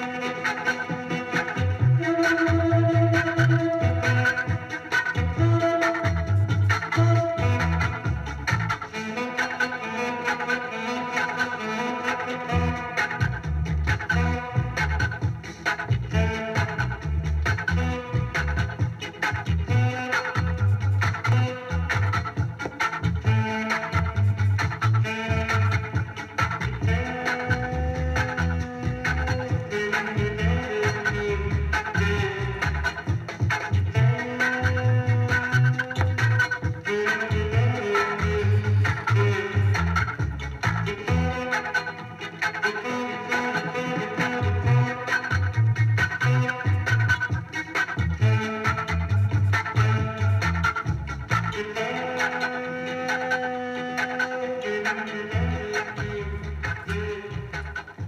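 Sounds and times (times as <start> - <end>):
reggae record playing: 0.0 - 58.0.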